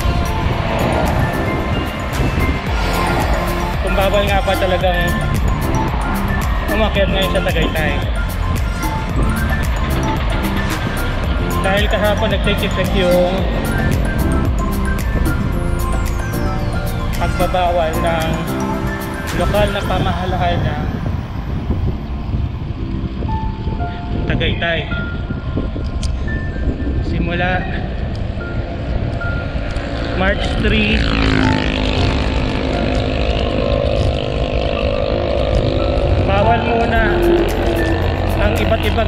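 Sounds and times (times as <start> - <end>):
passing motor traffic droning: 0.0 - 24.2, 28.1 - 39.0
wind buffeting microphone: 0.0 - 39.0.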